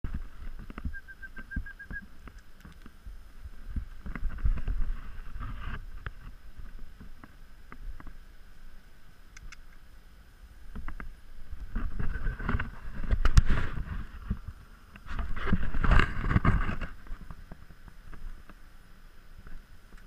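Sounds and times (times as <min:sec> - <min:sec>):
short high chirps: 0:00.9 - 0:02.1.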